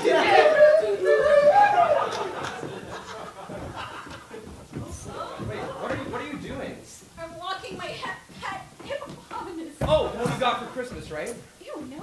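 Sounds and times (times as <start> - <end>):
people vocalising: 0.0 - 6.1.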